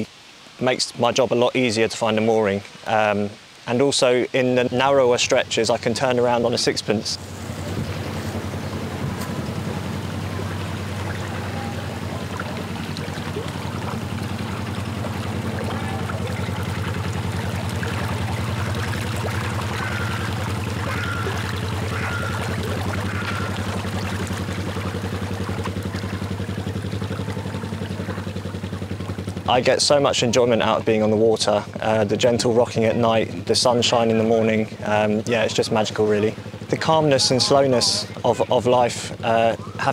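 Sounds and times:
water churning from propeller: 0:02.1 - 0:39.9
small diesel engine running: 0:07.2 - 0:30.3, 0:34.6 - 0:38.3.

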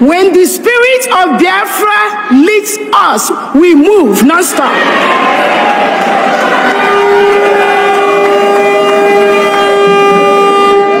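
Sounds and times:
horn long loud note: 0:06.7 - 0:11.0.

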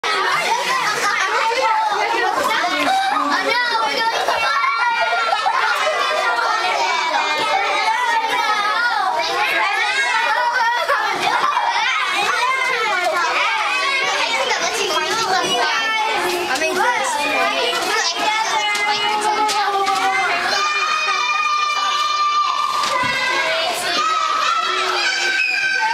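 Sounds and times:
children chattering: 0:00.0 - 0:25.9.

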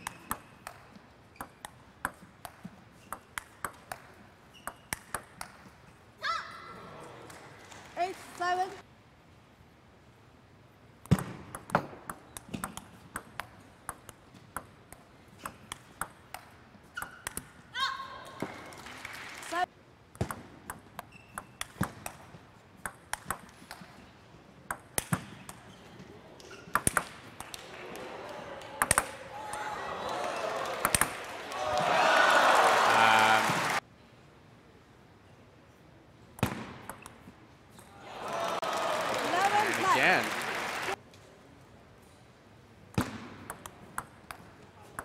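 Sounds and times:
table tennis ball clicking: 0:00.1 - 0:05.6, 0:11.1 - 0:17.5, 0:22.8 - 0:23.9, 0:43.5 - 0:45.0
crowd cheering: 0:27.6 - 0:33.8, 0:37.9 - 0:41.0
person shouting: 0:32.9 - 0:33.6.

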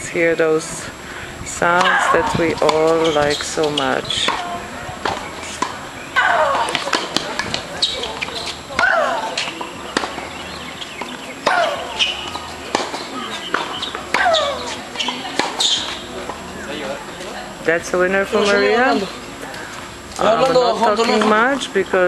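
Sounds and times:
racket hitting ball: 0:01.7 - 0:16.4
ball bouncing on hard court: 0:11.0 - 0:16.0.

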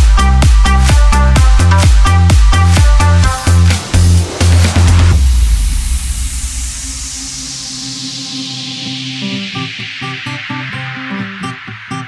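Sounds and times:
sub-bass tone: 0:00.0 - 0:10.4
white-noise sweep falling in pitch: 0:00.0 - 0:11.6
electro house music: 0:00.0 - 0:12.0.

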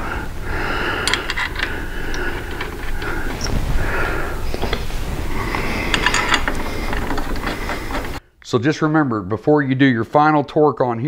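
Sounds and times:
metallic clicks and scrapes: 0:00.9 - 0:03.6, 0:04.4 - 0:08.2.

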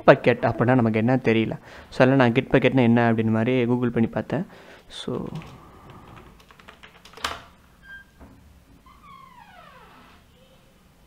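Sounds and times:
keyboard keys clicking: 0:05.2 - 0:07.5.

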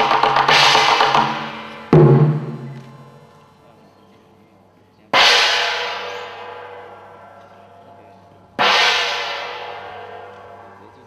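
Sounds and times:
gong struck with mallet: 0:00.3 - 0:03.2, 0:08.6 - 0:11.0.

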